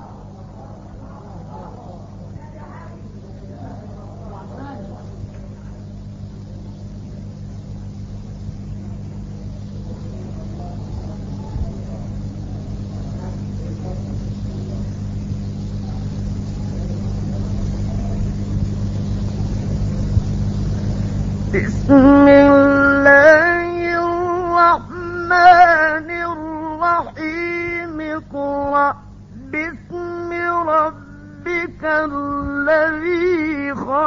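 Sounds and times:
faint indistinct voices: 0:00.0 - 0:34.0
low hum and rumble: 0:00.0 - 0:34.0.

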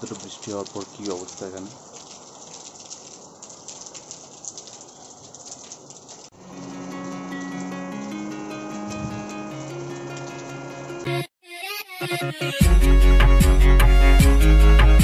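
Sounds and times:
rain hiss and patter: 0:00.0 - 0:11.2
music with long held notes: 0:06.5 - 0:15.0.

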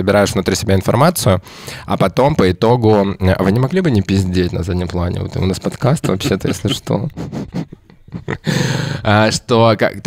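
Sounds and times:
man speaking: 0:00.0 - 0:07.2, 0:09.0 - 0:10.0.

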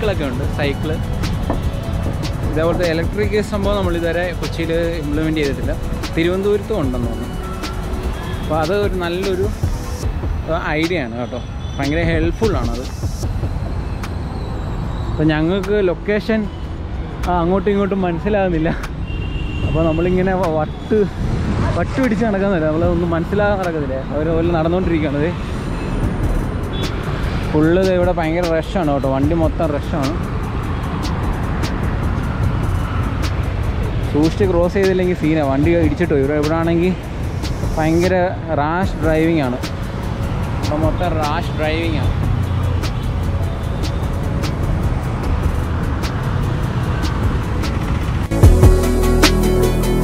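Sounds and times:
motorcycles passing: 0:00.0 - 0:11.0, 0:20.7 - 0:48.3
background music with light beat: 0:00.0 - 0:11.1, 0:11.8 - 0:14.3, 0:26.0 - 0:50.0
bus passing: 0:00.0 - 0:11.8, 0:29.7 - 0:50.0
low rumble of engines and tyres: 0:00.0 - 0:50.0.

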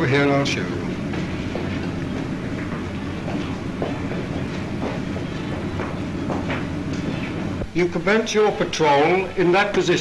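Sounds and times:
film soundtrack hiss and hum: 0:00.0 - 0:10.0
footsteps of men walking: 0:00.4 - 0:07.8.

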